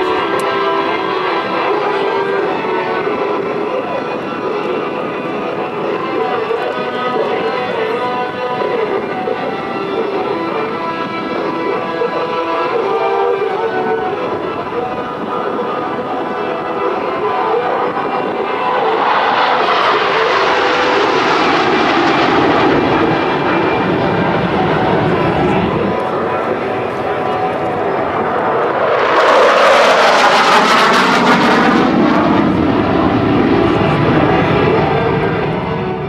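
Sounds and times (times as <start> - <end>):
jet aircraft roaring overhead: 0.0 - 36.0.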